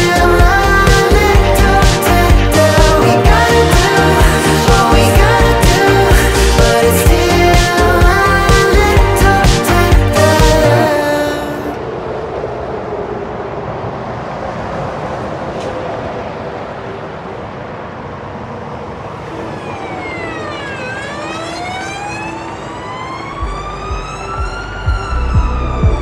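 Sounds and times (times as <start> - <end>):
bass beat with low thuds: 0.0 - 10.8, 23.4 - 26.0
siren-like wail: 18.9 - 26.0.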